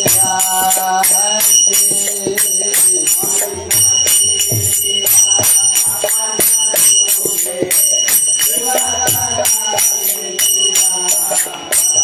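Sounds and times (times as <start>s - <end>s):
hand cymbals ringing: 0.0s - 12.0s.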